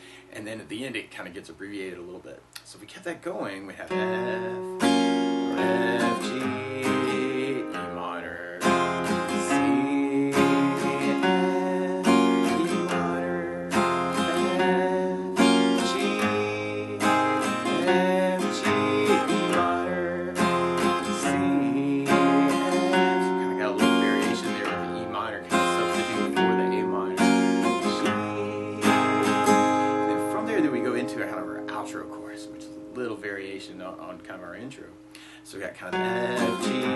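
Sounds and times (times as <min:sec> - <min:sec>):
acoustic guitar strumming: 0:03.2 - 0:36.9.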